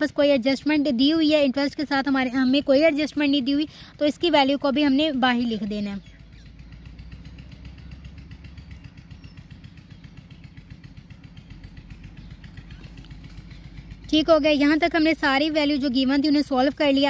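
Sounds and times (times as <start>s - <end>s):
faint pulsing drone: 0.0s - 17.0s.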